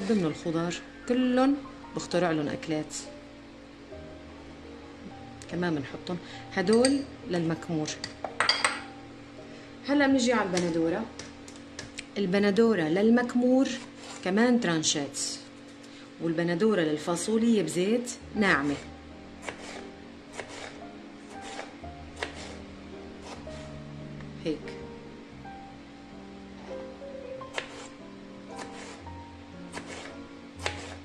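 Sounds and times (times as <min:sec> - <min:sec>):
background music: 0:00.0 - 0:12.0, 0:17.7 - 0:31.0.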